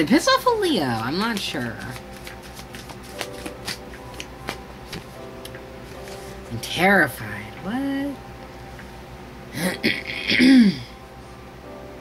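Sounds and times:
cards being shuffled: 0:00.8 - 0:05.2.

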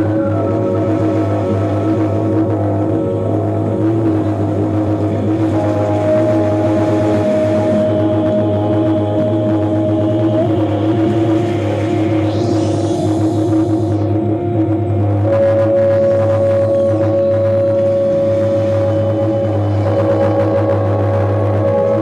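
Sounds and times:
electronic drone music: 0:00.0 - 0:22.0
steady low hum: 0:00.0 - 0:22.0.

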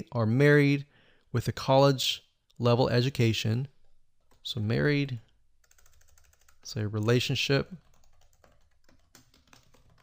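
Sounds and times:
computer keyboard typing: 0:05.6 - 0:10.0.

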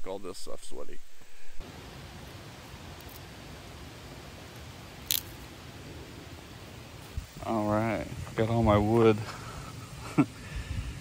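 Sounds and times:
steady wind: 0:00.0 - 0:11.0
wood cracking: 0:05.0 - 0:05.4.

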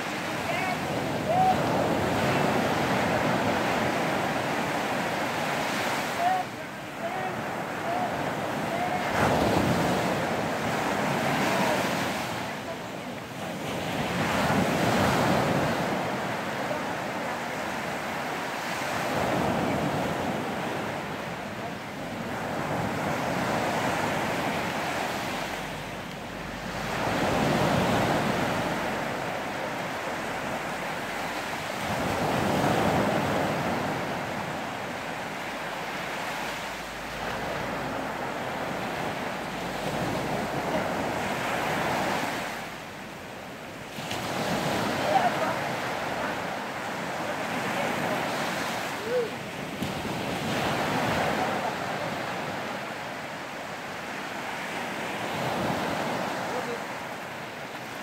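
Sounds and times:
ocean surf breaking: 0:00.0 - 0:58.0.

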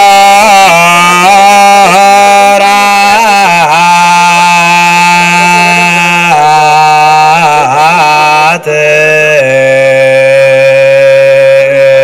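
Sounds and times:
person chanting in long notes: 0:00.0 - 0:12.0.

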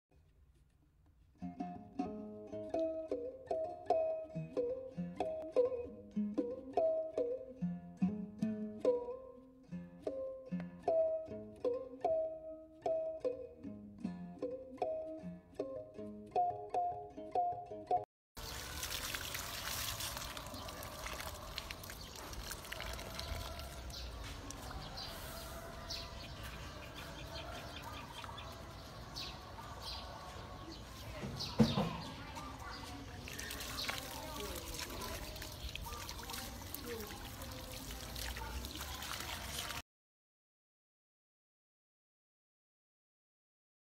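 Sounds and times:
plucked instrumental music: 0:01.2 - 0:18.1
outdoor background noise: 0:18.4 - 0:39.8.

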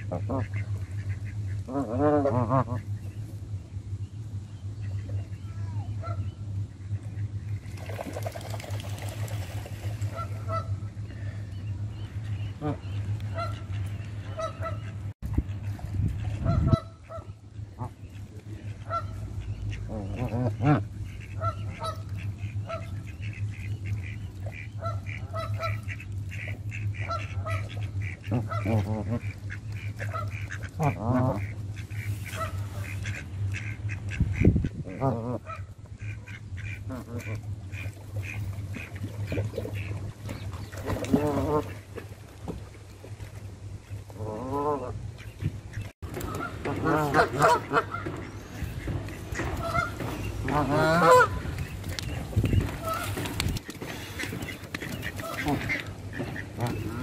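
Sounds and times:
geese honking: 0:00.0 - 0:07.5, 0:09.7 - 0:42.0, 0:44.1 - 0:57.0
steady low hum: 0:00.0 - 0:57.0.

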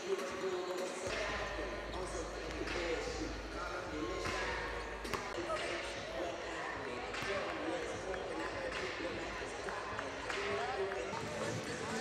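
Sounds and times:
indistinct voices echoing: 0:00.0 - 0:12.0.

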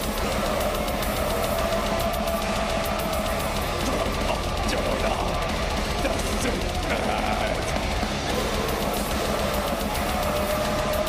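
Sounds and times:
bass guitar: 0:00.0 - 0:11.0
distorted electric guitars: 0:00.0 - 0:11.0
rapid drum hits: 0:00.0 - 0:11.0.

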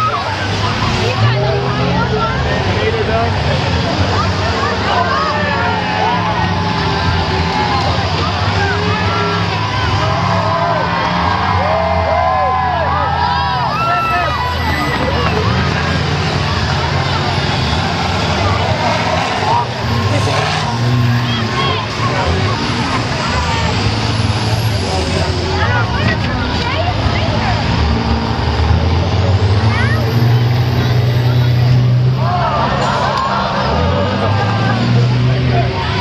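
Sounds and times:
bus engines revving: 0:00.0 - 0:36.0
crowd yelling and cheering: 0:00.0 - 0:36.0.

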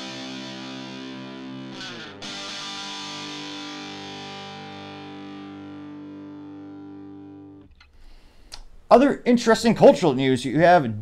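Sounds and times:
distorted guitar chord ringing: 0:00.0 - 0:07.7.

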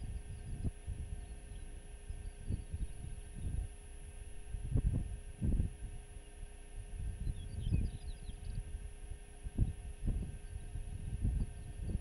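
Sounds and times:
wind buffeting microphone: 0:00.0 - 0:06.1, 0:06.8 - 0:12.0
small bird chirping: 0:07.2 - 0:08.6.

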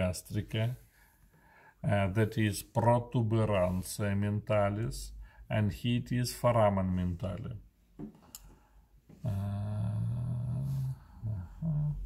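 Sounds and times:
person saying uhh: 0:09.2 - 0:12.0.

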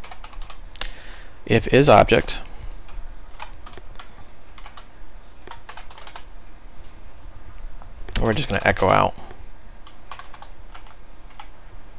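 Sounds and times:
keyboard typing: 0:00.0 - 0:00.6, 0:03.3 - 0:07.0, 0:08.1 - 0:09.1, 0:09.8 - 0:11.5
faint low hum: 0:00.0 - 0:11.9.

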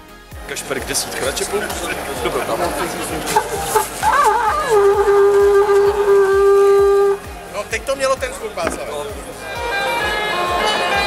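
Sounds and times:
animal horn blown: 0:03.2 - 0:07.4, 0:09.4 - 0:11.0.

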